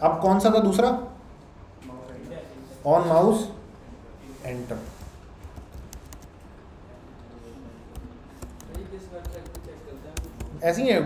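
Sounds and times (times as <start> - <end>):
keyboard and mouse clicks: 5.4 - 6.3, 7.9 - 10.6.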